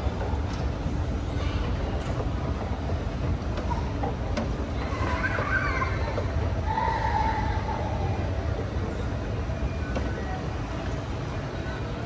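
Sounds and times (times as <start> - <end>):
escalator rumbling: 0.0 - 12.0.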